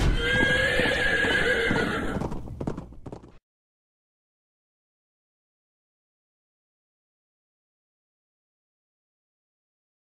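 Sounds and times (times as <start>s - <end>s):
horse neighing: 0.0s - 2.4s
hoofbeats clopping: 0.0s - 3.4s.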